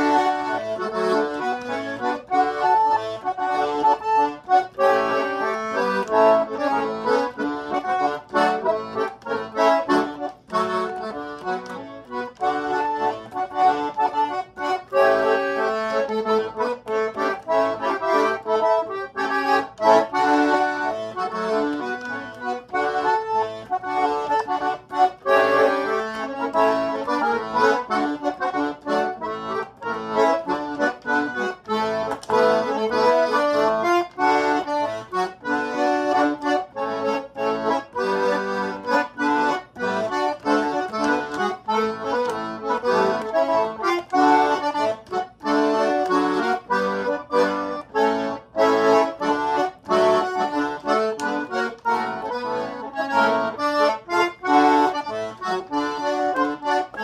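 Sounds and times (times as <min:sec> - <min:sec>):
concertina playing a polka: 0:00.0 - 0:57.0.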